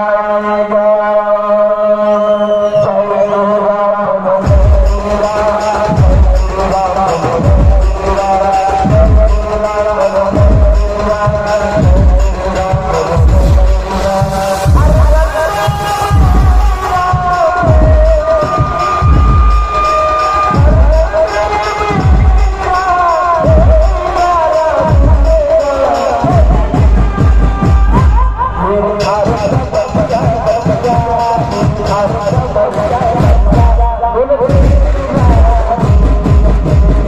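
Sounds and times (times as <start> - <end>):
band playing live: 4.4 - 37.0
heavy bass drum beats: 4.4 - 37.0.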